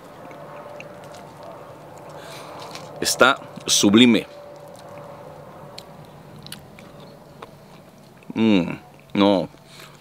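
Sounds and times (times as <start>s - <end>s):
person biting and chewing fruit: 0.0s - 3.7s, 5.7s - 10.0s.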